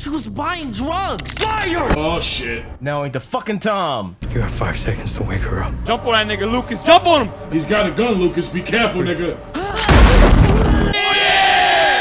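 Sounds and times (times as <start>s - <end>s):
people yelling together: 10.8s - 12.0s.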